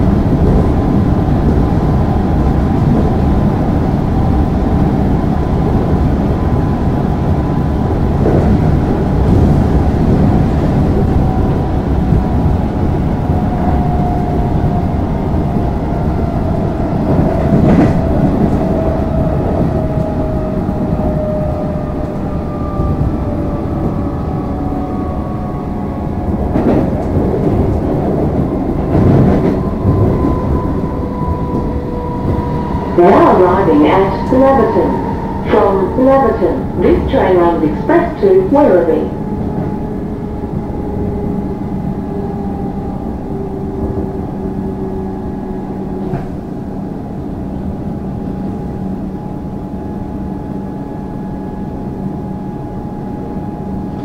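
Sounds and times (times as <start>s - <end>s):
train wheels rumbling on track: 0.0s - 54.0s.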